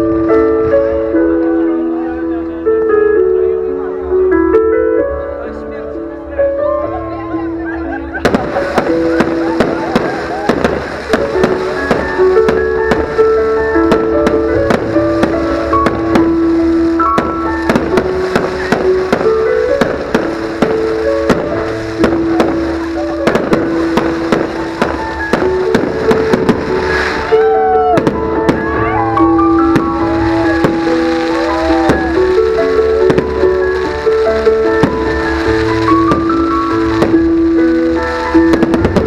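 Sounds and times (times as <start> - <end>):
music playing: 0.0 - 39.0
fireworks bangs and crackles: 8.1 - 39.0.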